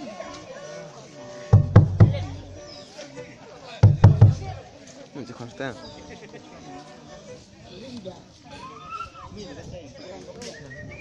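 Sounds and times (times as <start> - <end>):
voices: 0.0 - 11.0
faint melody: 1.1 - 4.6
large drum strikes: 1.5 - 2.7, 3.8 - 4.6.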